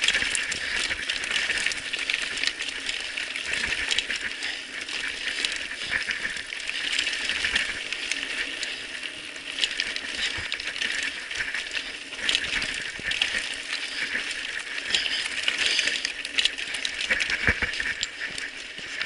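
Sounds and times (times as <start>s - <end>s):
bike tyres rattling over stones: 0.0s - 19.0s.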